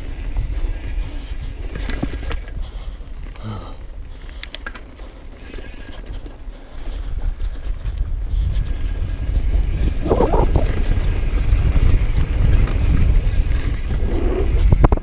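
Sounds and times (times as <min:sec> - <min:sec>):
wind buffeting microphone: 0:00.0 - 0:04.4, 0:05.9 - 0:15.0
mountain bike rumbling and rattling: 0:00.0 - 0:15.0.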